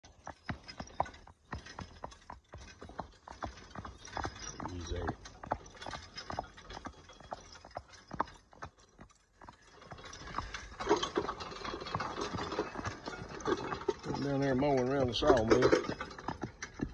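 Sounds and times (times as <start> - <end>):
horse hooves clip-clopping on pavement: 0.0 - 16.9.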